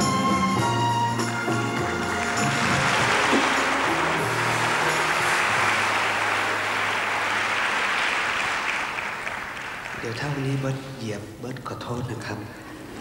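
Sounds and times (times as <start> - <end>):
orchestra low held notes: 0.0 - 8.6
audience applauding: 1.2 - 10.8.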